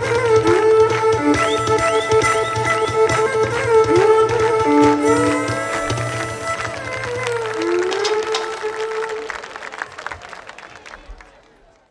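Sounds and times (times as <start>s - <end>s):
folk band with violin and lute: 0.0s - 9.3s
people clapping: 0.0s - 11.9s.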